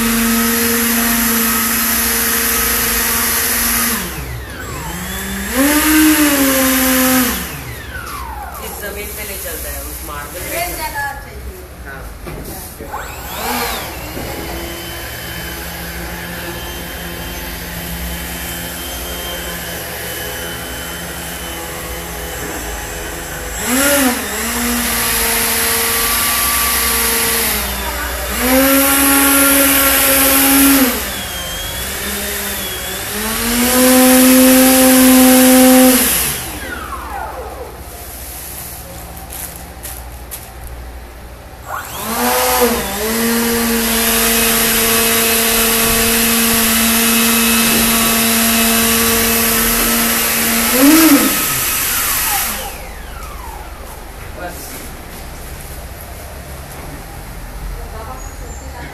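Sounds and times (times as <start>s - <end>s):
electric ducted fan whining: 0.0s - 58.9s.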